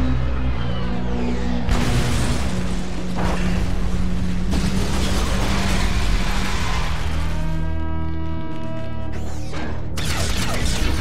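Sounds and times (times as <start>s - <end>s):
dramatic orchestral music: 0.0s - 11.0s
crash explosion: 1.7s - 7.4s.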